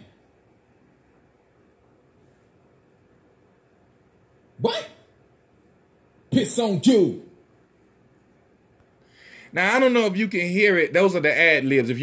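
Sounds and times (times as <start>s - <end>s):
faint background noise: 0.0s - 12.0s
person shouting ad-lib: 4.6s - 5.1s.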